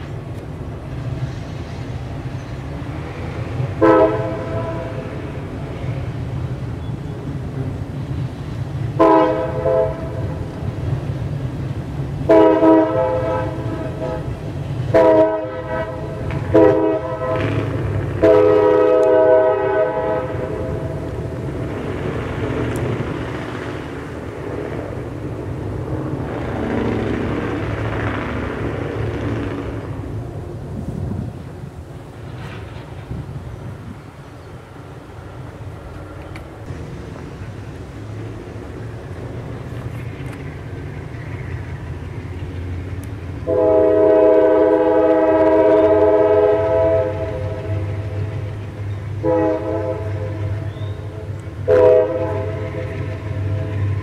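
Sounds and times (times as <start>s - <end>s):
freight cars rumbling past: 0.0s - 54.0s
locomotive horn blasts: 3.8s - 5.2s, 9.0s - 10.4s, 12.2s - 21.1s, 43.4s - 48.3s, 49.2s - 53.9s.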